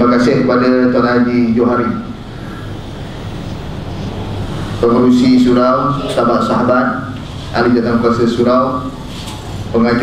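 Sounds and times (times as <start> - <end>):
microphone room hiss: 0.0 - 10.0.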